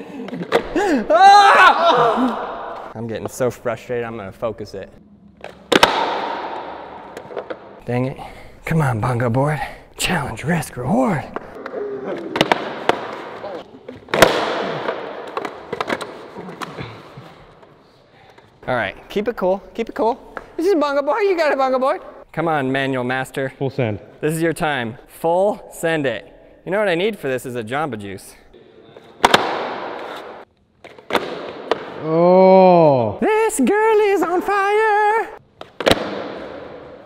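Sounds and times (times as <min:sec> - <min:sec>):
loud board slap: 0:05.7 - 0:06.8, 0:14.1 - 0:16.0, 0:29.2 - 0:30.4.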